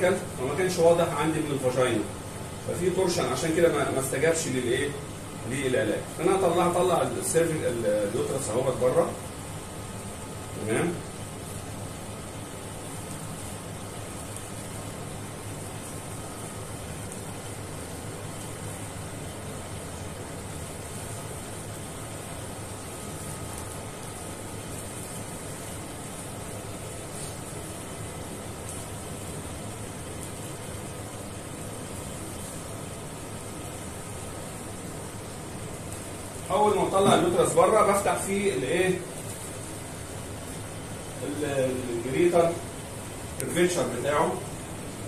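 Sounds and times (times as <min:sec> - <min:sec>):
steady background hiss: 0:00.0 - 0:45.0.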